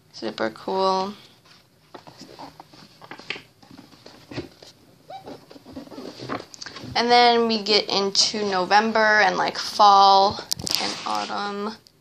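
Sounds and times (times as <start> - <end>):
paper rustling: 10.5 - 11.4
paper sheets being turned: 10.5 - 11.4.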